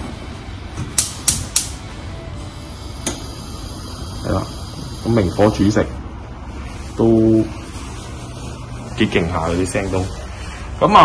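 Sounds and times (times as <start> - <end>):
gas hob igniter clicking: 0.8 - 1.8, 3.0 - 3.3.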